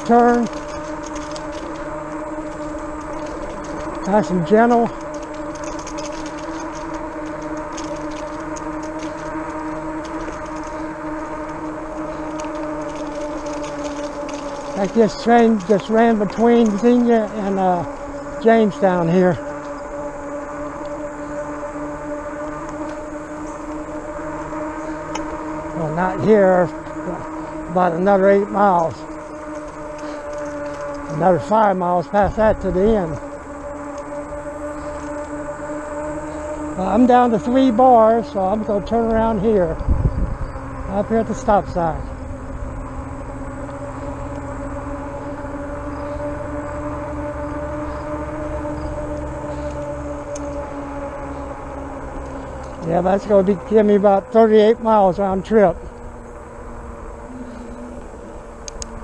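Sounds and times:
low motor hum: 0.0 - 59.0
tires rolling on pavement: 0.0 - 59.0
tyre and wind noise: 39.8 - 40.8
faint light ticks: 58.6 - 58.9.

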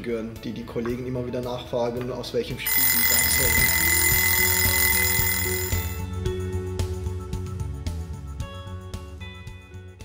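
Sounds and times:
high electronic alarm tone: 2.7 - 6.0.

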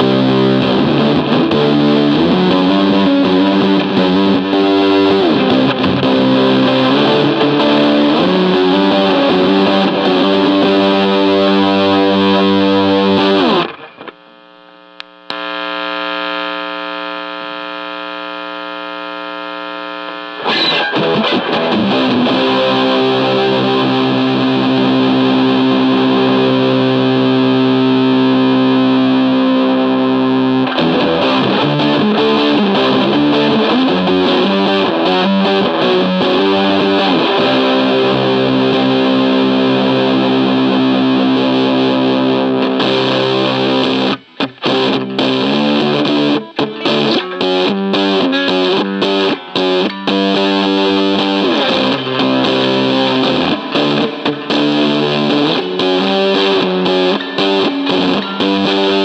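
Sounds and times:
fuzzed electric guitar riffs: 0.0 - 59.0.

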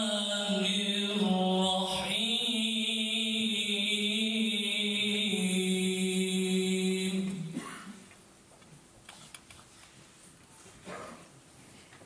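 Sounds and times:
man chanting recitation: 0.0 - 7.5.

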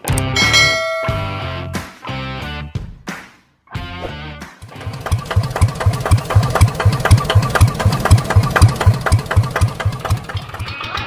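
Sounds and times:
diesel engine running: 4.6 - 11.0.

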